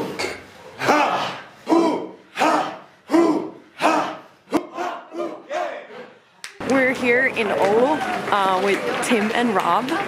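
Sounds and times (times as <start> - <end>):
people exhaling forcefully in unison: 0.6 - 4.5.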